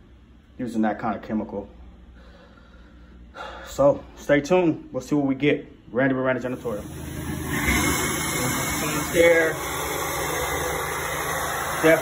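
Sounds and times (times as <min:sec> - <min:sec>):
carpet extractor suction rushing: 0:06.5 - 0:12.0.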